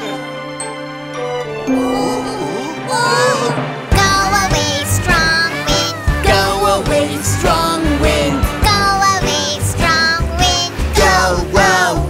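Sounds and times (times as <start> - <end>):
bright backing music: 0.0 - 12.0
cartoon voices singing: 1.7 - 12.0.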